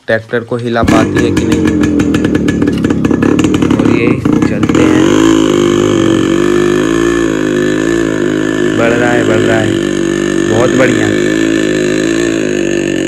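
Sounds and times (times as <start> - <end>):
motorcycle engine revving: 0.8 - 13.0.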